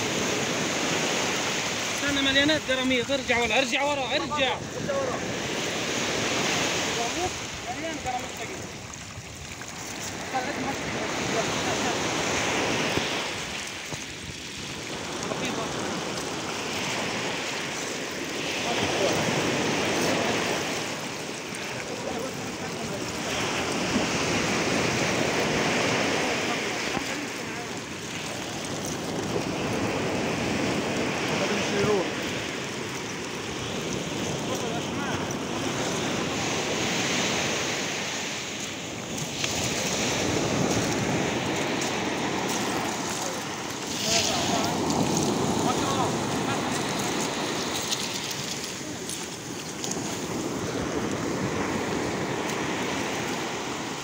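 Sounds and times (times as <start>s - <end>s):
sea surf on beach: 0.0s - 54.0s
seawater splashing at shoreline: 0.0s - 54.0s.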